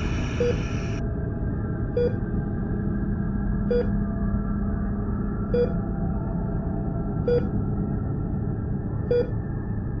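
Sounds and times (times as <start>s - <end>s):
low ambient drone: 0.0s - 10.0s.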